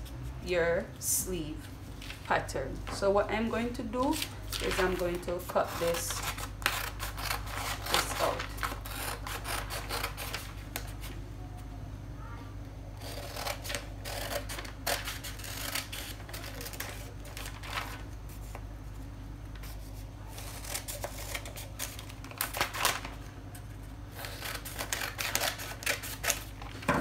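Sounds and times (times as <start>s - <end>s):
paper rustling: 4.2s - 11.2s, 15.5s - 18.6s
scissors snipping paper: 13.0s - 17.6s, 20.3s - 23.0s, 24.1s - 26.6s.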